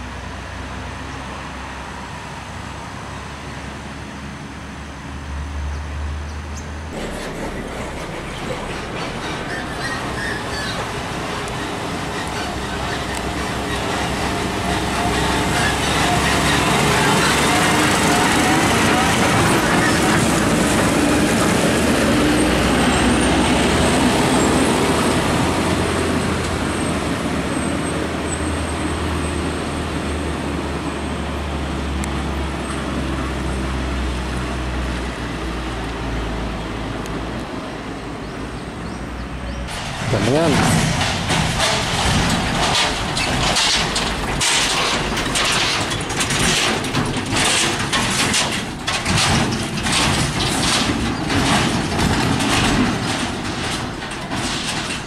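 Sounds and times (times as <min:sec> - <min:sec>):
diesel trucks driving past: 0:00.0 - 0:55.0
tyre and road noise: 0:00.0 - 0:55.0.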